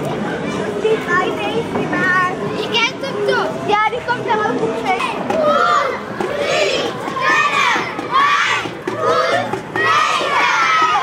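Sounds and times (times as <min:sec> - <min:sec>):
background murmur: 0:00.0 - 0:11.0
children calling and chattering: 0:00.0 - 0:11.0.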